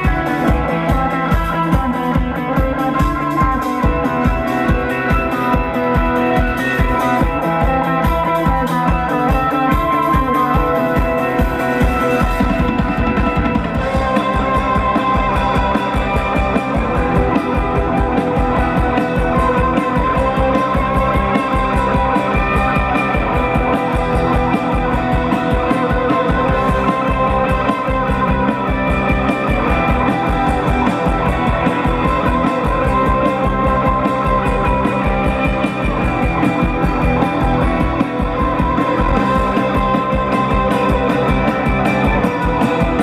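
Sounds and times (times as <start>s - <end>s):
electric guitars ringing: 0.0s - 43.0s
fast driving drums: 0.0s - 43.0s.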